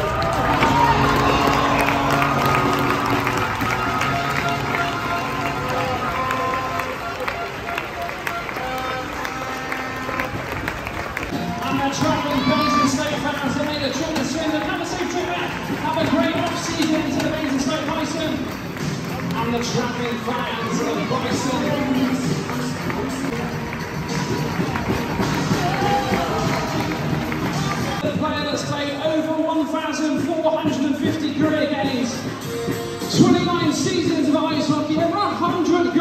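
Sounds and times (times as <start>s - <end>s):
crowd cheering: 0.0s - 28.2s
crowd voices: 0.0s - 36.0s
music over public address system: 0.0s - 36.0s.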